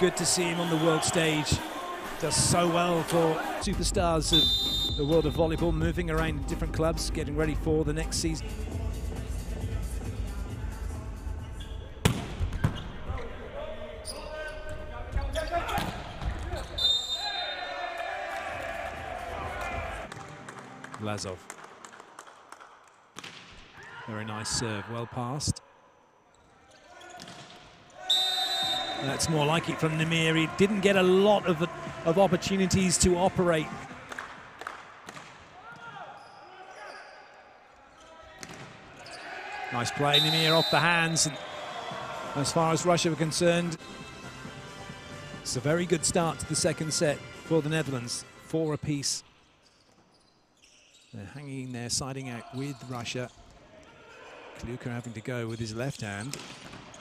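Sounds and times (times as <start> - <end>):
crowd voices: 0.0 - 3.7
players shouting: 0.0 - 3.7, 16.6 - 20.1, 28.0 - 33.9, 39.0 - 43.4
shoes squeaking on court floor: 11.5 - 13.4, 14.0 - 17.6, 35.1 - 41.6, 48.6 - 53.6, 54.8 - 57.0
volleyball thuds: 12.0 - 13.0.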